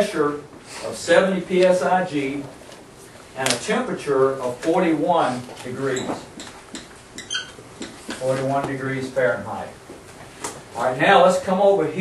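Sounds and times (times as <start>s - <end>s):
marker squeak: 5.9s - 8.2s
marker writing on whiteboard: 5.9s - 8.5s.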